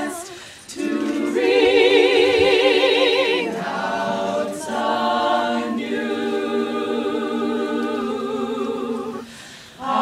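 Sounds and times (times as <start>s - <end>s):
women's chorus singing in harmony: 0.0s - 10.0s.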